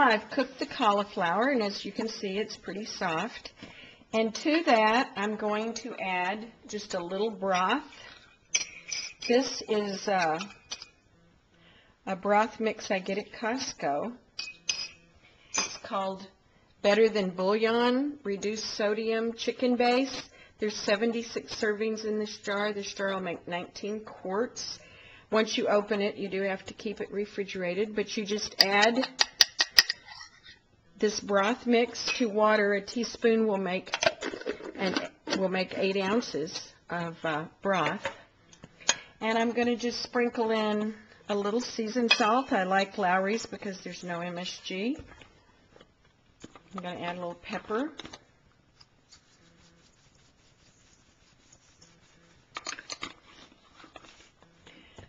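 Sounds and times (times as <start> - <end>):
glassware clinking: 7.5 - 9.4, 14.4 - 15.0.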